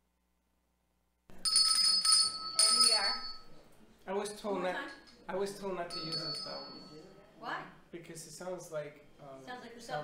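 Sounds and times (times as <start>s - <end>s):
small bell ringing: 1.3s - 3.6s, 4.9s - 7.1s.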